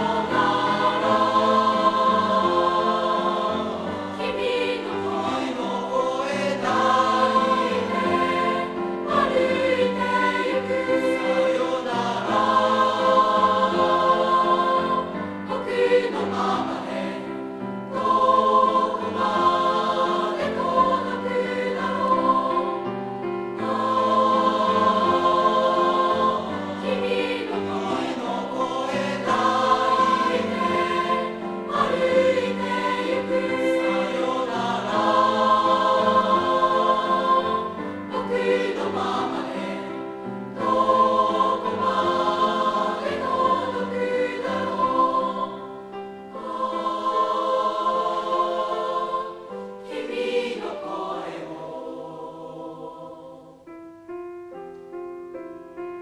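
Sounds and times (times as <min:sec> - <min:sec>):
piano accompaniment: 0:00.0 - 0:52.1, 0:53.5 - 0:56.0
children's choir singing: 0:00.0 - 0:53.8.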